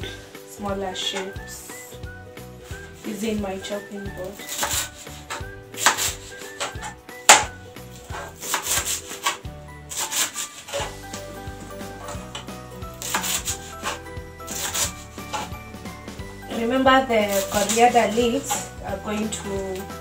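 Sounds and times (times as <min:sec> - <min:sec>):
background music: 0:00.0 - 0:20.0
knife chopping on plastic board: 0:04.4 - 0:10.3, 0:13.0 - 0:15.5
blade scraping board: 0:04.4 - 0:11.0, 0:12.0 - 0:15.6, 0:17.1 - 0:20.0.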